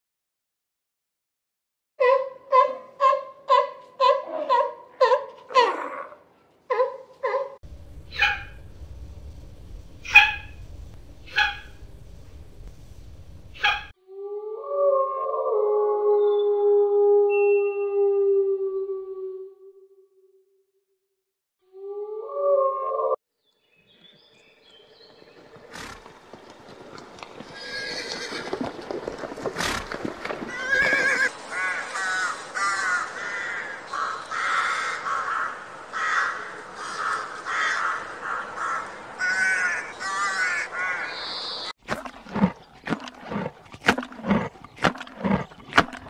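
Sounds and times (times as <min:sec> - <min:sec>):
crows cawing: 0:30.5 - 0:41.5.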